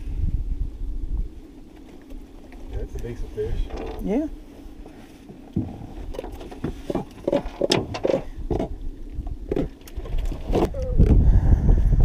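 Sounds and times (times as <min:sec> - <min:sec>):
knocks clicks and rattles from net: 0:06.2 - 0:08.7.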